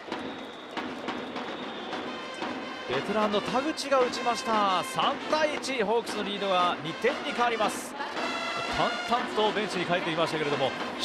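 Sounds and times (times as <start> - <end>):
crowd noise: 0.0 - 11.0
music over loudspeakers: 1.4 - 11.0.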